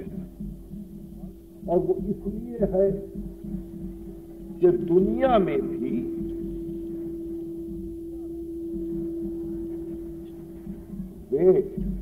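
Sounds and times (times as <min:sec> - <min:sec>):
low rumble: 0:00.0 - 0:12.0
steady single-pitch hum: 0:00.0 - 0:12.0.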